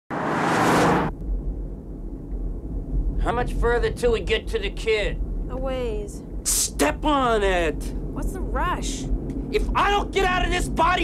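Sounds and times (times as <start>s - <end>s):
engine rush: 0.1s - 1.6s.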